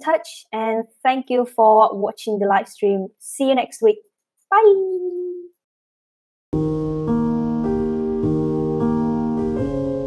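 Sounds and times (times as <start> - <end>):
woman saying bye: 4.5 - 5.5.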